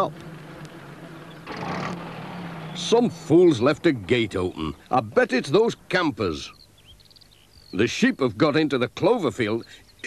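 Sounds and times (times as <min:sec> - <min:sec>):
van engine humming: 0:00.0 - 0:06.5.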